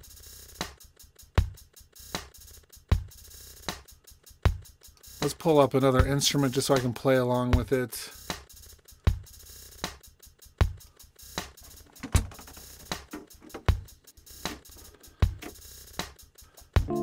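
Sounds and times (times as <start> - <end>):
hi-hat ticks: 0.0 - 11.8, 12.9 - 16.9
sampled drum loop: 0.0 - 17.0.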